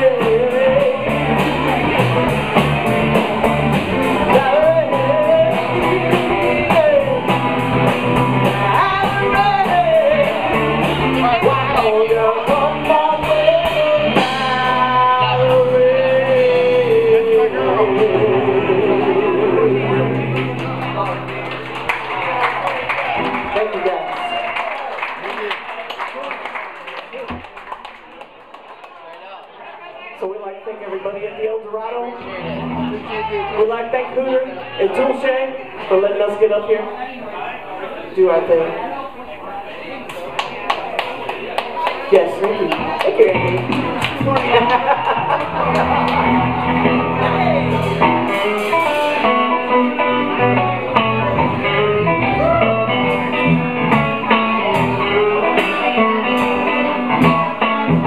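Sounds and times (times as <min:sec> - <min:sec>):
blues-funk band playing: 0:00.0 - 0:27.9, 0:32.1 - 0:35.2, 0:38.4 - 0:58.0
audience chatter: 0:00.0 - 0:58.0
woman singing: 0:04.3 - 0:07.4, 0:08.6 - 0:10.6, 0:11.2 - 0:20.1.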